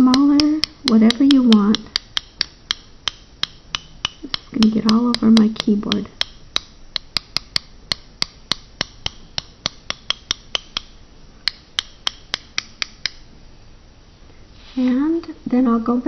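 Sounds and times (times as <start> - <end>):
paintbrush tapping on brush handle: 0.0 - 13.3.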